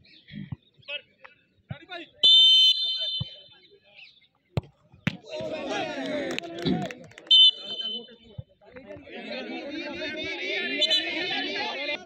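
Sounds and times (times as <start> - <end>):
referee's whistle blast: 2.2 - 3.5, 7.3 - 8.1
football being kicked: 4.6 - 5.5.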